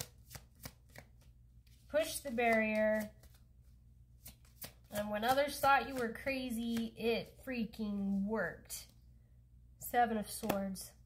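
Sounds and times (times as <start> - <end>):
cards being shuffled: 0.0 - 7.0.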